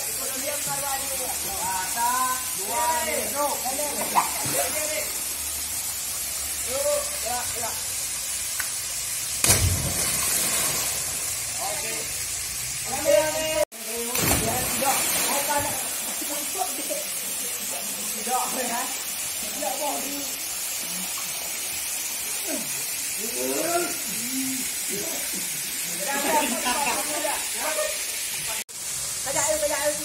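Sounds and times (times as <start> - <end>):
rush of falling water: 0.0 - 30.0
loud splash into water: 9.4 - 11.2, 14.1 - 15.8.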